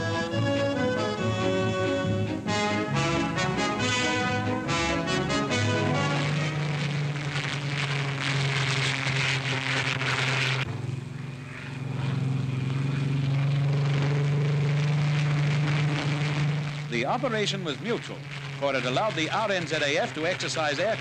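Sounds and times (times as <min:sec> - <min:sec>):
propeller aircraft droning overhead: 0:00.0 - 0:21.0.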